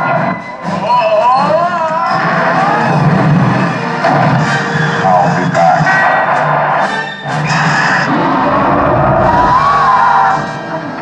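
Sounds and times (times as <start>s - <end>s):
loud soundtrack music: 7.7s - 10.6s.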